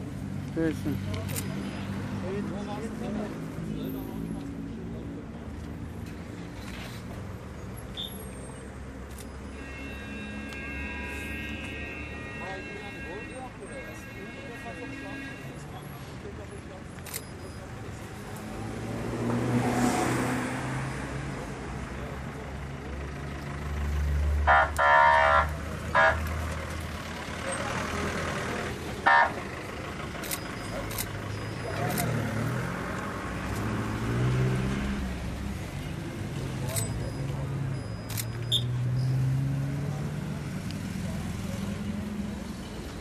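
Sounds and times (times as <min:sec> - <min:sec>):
car horn blasts: 0:09.5 - 0:15.6
low rumble of passing vehicles: 0:15.4 - 0:43.0.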